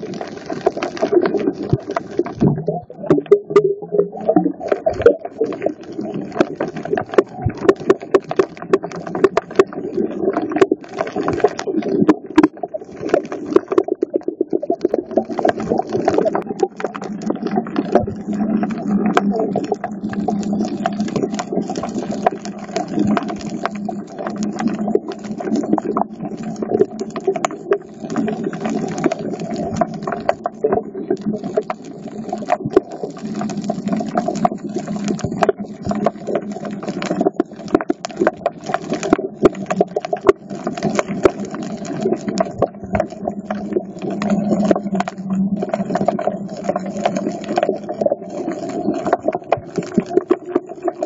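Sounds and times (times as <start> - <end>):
muffled underwater rumble: 0.0 - 51.0
sharp clicks and crackles: 0.0 - 51.0.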